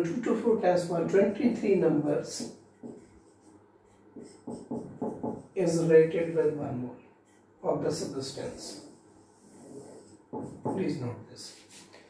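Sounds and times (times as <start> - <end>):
marker writing on whiteboard: 2.0 - 12.0.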